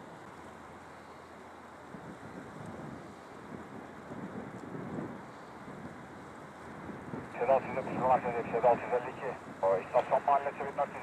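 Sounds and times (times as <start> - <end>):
wind buffeting microphone: 2.0 - 6.1.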